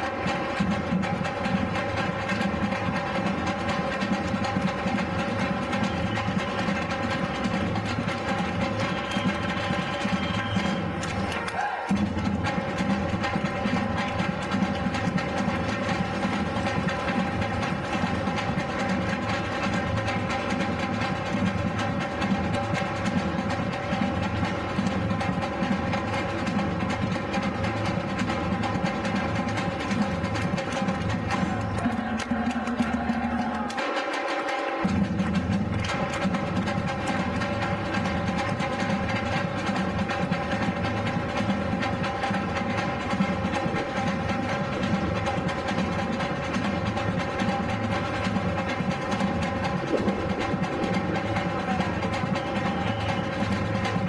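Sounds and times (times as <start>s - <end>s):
samba drum ensemble: 0.0s - 54.0s.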